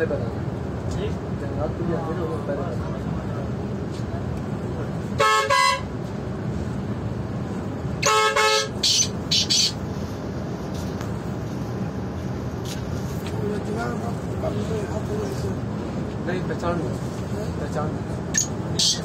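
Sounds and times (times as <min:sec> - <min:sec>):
bus engine rumble: 0:00.0 - 0:19.0
bus horn blasts: 0:05.2 - 0:06.0, 0:08.0 - 0:08.8.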